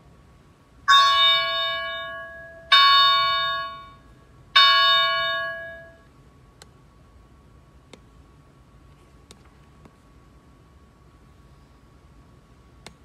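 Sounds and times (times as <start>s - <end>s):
altar bell ringing: 0.9s - 6.1s.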